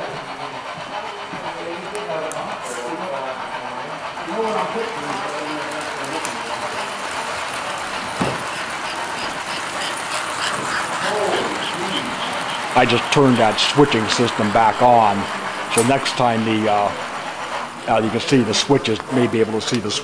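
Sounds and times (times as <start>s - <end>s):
model train rumbling on rails: 0.0s - 20.0s.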